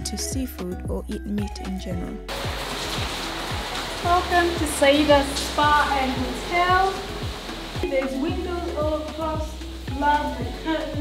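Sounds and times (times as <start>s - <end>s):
background music with steady beat: 0.0s - 11.0s
steady hiss: 2.3s - 11.0s.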